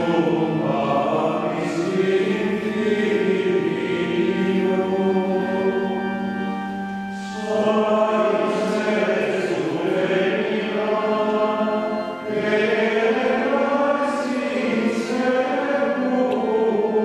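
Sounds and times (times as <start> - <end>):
choir singing chant: 0.0 - 6.1, 7.1 - 17.0
organ chord: 0.0 - 17.0.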